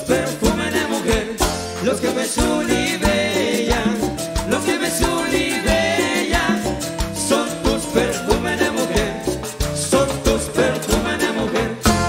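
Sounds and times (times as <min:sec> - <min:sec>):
cumbia band playing: 0:00.0 - 0:12.0.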